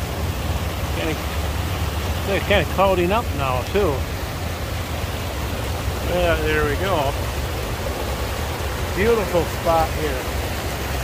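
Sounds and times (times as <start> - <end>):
creek rushing over rocks: 0.0 - 11.0.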